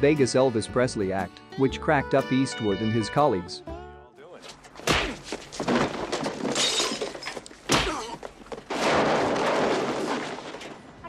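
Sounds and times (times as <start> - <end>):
sharp punch hit: 4.8 - 5.2
dense crashing clatter: 5.4 - 7.7, 8.4 - 11.0.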